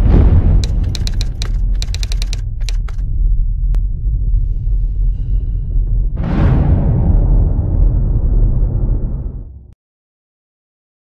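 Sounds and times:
keyboard key clicks: 0.6 - 3.0
deep steady rumble: 2.8 - 9.7.

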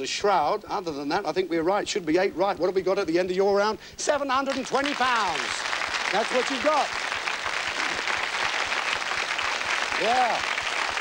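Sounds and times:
audience applause: 4.5 - 11.0.

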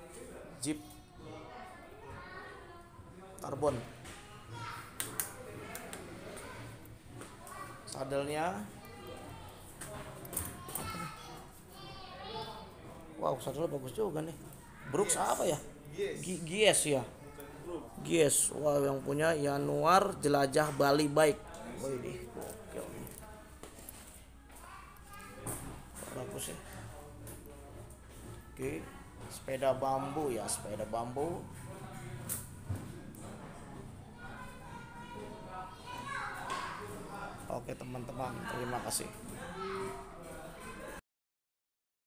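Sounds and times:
faint background voices: 0.0 - 41.0.

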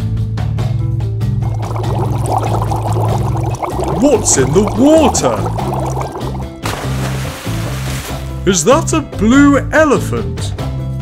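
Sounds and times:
water bubbling and gurgling: 1.4 - 8.4
small bubble pops: 1.5 - 8.3.

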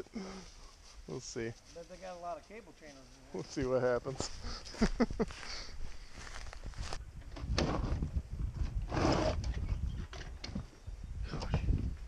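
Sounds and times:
footsteps through tall grass: 0.4 - 7.0.

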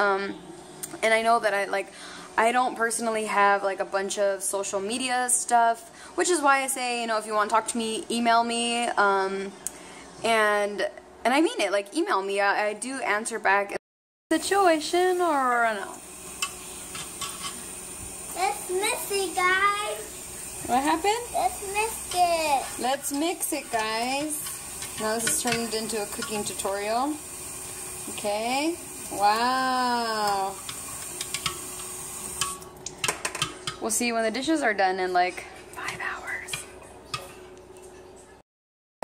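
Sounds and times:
kitchen tap running: 14.3 - 38.0.

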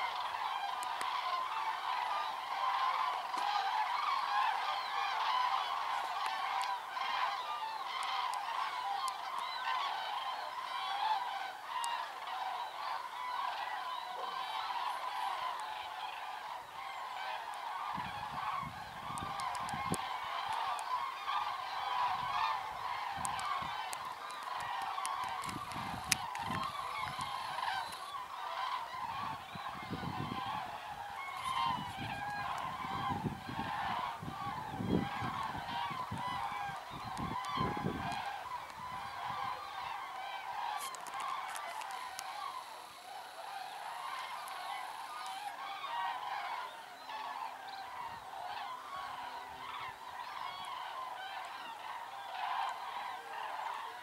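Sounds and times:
cranes trumpeting in chorus: 0.0 - 54.0.

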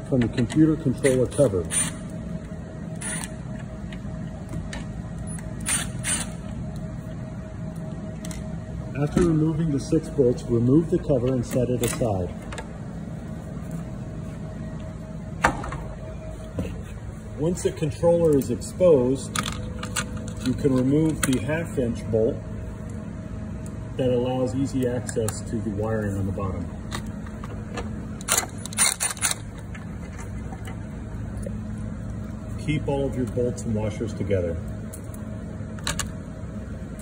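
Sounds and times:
low background hum: 0.0 - 37.0.

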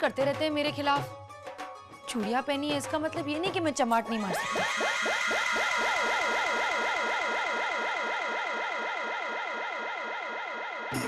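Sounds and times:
synthesized echoing chord with warble: 4.3 - 11.0.

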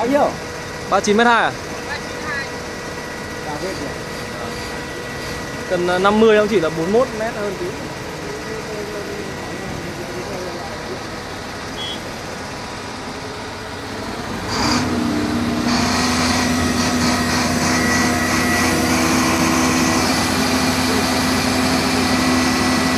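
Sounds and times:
heavy diesel engine idling: 0.0 - 22.9.

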